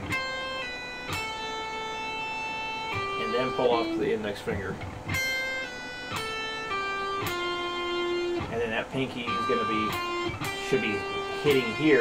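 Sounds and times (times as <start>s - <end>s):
electric guitar phrase: 0.0s - 12.0s
person speaking: 10.6s - 12.0s.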